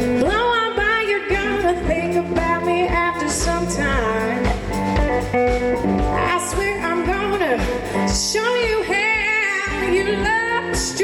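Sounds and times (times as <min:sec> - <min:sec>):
woman singing: 0:00.0 - 0:04.8, 0:06.0 - 0:11.0
drum kit: 0:00.0 - 0:11.0
electric guitar: 0:00.0 - 0:11.0.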